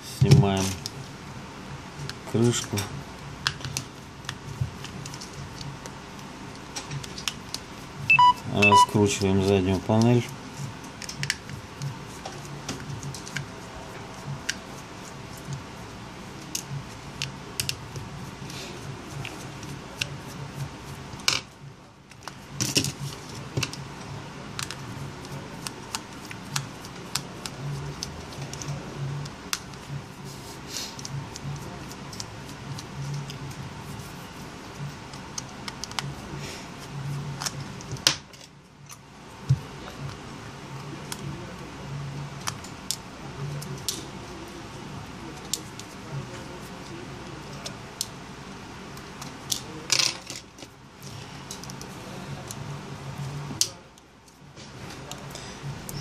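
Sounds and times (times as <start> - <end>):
low background hum: 0.0 - 56.0.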